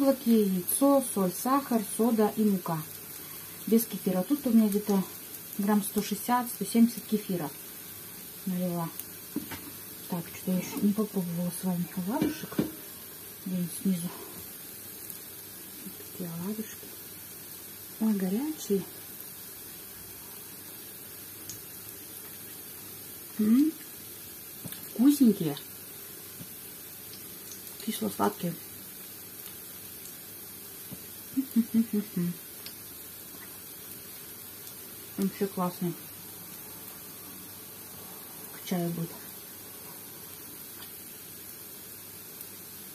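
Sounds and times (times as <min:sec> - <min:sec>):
fritters sizzling in oil: 0:00.0 - 0:42.9
room tone hiss: 0:00.0 - 0:42.9.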